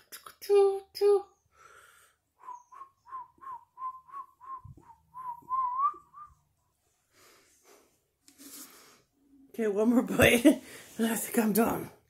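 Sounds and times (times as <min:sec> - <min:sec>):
person whistling short notes: 0:02.4 - 0:06.4.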